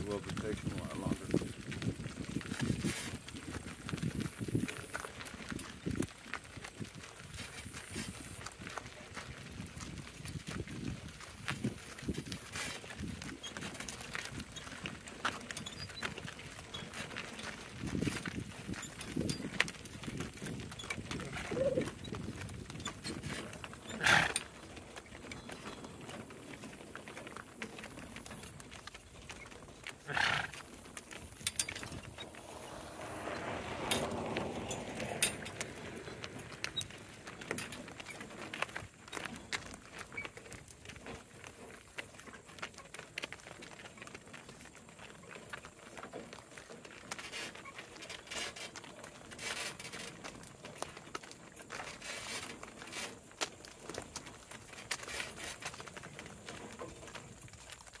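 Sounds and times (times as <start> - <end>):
hoofbeats on gravel: 0.0 - 58.0.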